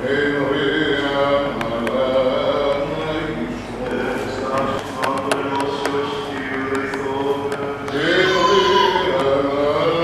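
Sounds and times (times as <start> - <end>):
liturgical chanting voice: 0.0 - 10.0.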